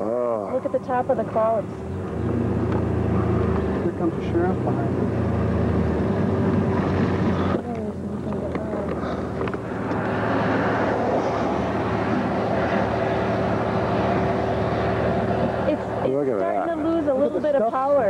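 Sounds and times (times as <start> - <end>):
light steady drone: 0.0 - 18.0
vehicle engine humming: 0.0 - 18.0.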